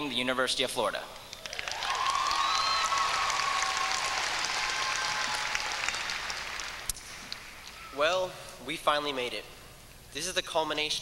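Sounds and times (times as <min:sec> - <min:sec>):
audience cheering: 0:01.4 - 0:06.9
audience applauding: 0:01.4 - 0:07.8.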